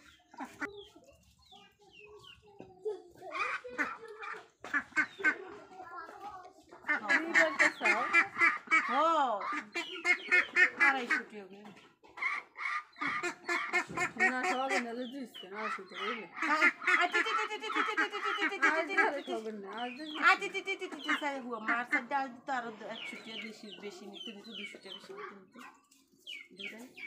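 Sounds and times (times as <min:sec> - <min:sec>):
ducks quacking: 0:00.0 - 0:00.9, 0:03.3 - 0:05.8, 0:06.8 - 0:11.4, 0:12.1 - 0:25.5.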